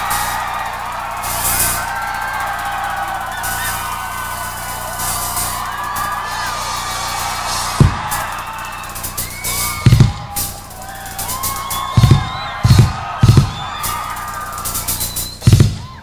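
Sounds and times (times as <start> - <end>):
cymbal crashes: 0.0 - 15.9
audience whoops and whistles: 0.0 - 16.0
bass drum and toms: 0.0 - 16.0.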